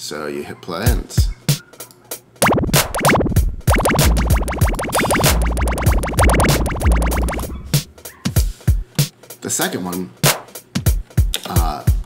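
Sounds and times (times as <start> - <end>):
sweeps falling in pitch: 2.4 - 7.9
electronic drum beat: 2.4 - 8.0.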